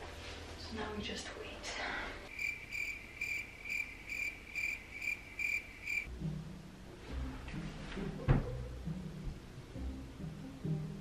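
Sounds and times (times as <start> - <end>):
cricket chirping: 2.3 - 6.1
low background music: 6.1 - 11.0.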